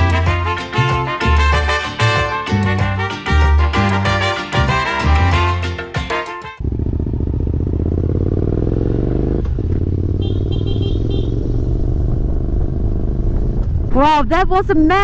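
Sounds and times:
music: 0.0s - 6.6s
motorcycle engine running: 6.6s - 14.1s.

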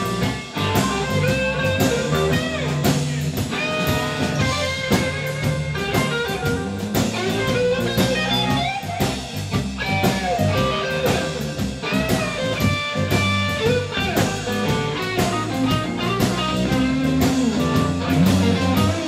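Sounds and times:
bass guitar: 0.0s - 19.0s
drum kit: 0.0s - 19.0s
electric guitar solo with bent notes: 0.0s - 19.0s.

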